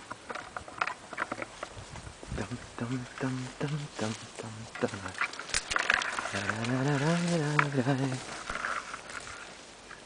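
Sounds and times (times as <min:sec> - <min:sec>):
footsteps crunching through grass: 0:00.4 - 0:10.0.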